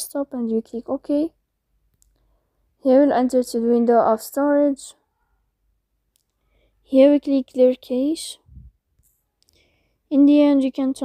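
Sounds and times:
person speaking: 0.0s - 1.4s, 6.9s - 8.7s, 10.1s - 11.0s.

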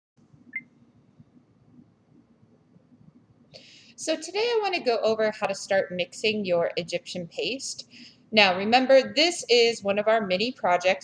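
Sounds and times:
faint room noise: 0.2s - 11.0s.

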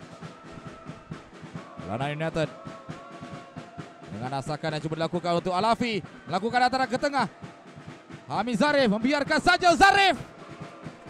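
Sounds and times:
music with steady drumbeat: 0.0s - 11.0s.

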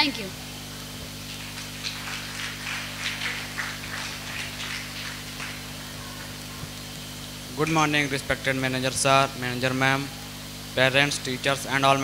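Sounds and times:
faint scattered higher sounds: 0.0s - 12.0s
low electrical hum: 0.0s - 12.0s.

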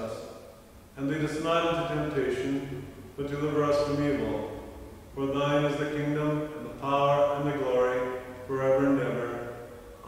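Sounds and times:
man chanting liturgy: 0.0s - 4.6s, 5.2s - 10.0s.

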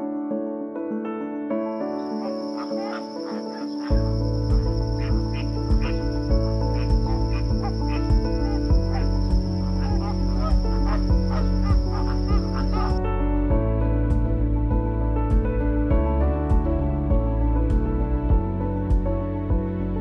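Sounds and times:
soft background music: 0.0s - 20.0s
birds chirping: 1.8s - 13.0s.

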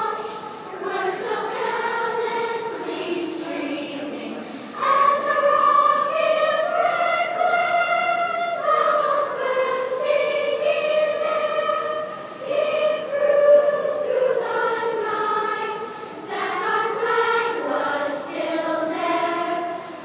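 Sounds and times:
children's choir singing: 0.0s - 20.0s.

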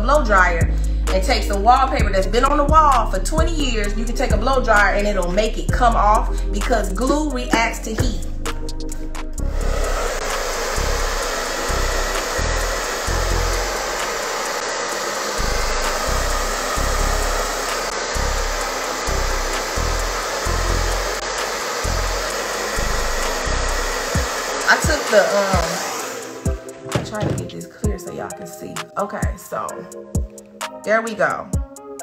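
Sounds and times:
hair dryer blowing: 0.0s - 32.0s.

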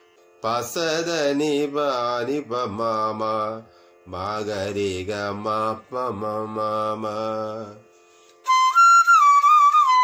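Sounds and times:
man singing note syllables: 0.4s - 7.9s.

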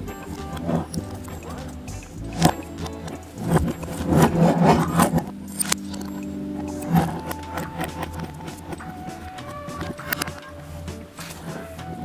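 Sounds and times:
metal parts rattling and scraping: 2.2s - 8.2s.

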